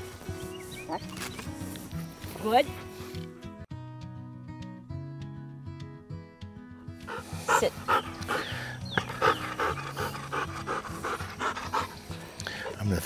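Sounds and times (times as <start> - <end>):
dog panting: 7.0 - 12.9.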